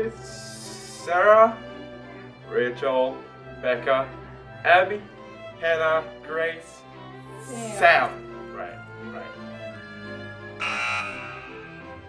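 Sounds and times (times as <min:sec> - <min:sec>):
background music: 0:00.0 - 0:12.0
harsh electric buzzer: 0:10.6 - 0:11.6.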